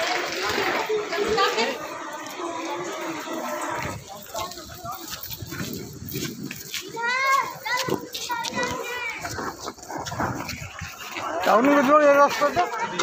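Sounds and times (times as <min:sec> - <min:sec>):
background voices: 0:00.0 - 0:13.0.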